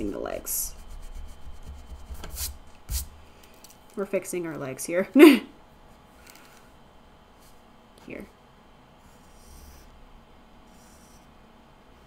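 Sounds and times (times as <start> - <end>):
eraser scrubbing on paper: 0.8 - 3.1.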